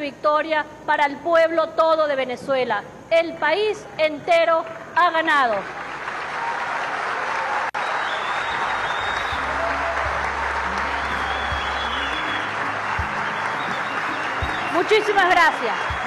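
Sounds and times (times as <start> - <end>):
audience applause: 5.6 - 16.0.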